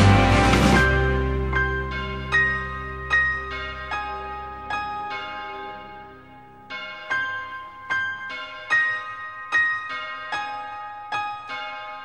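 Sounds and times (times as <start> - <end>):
song: 0.0 - 12.0
tolling bell: 0.7 - 12.0.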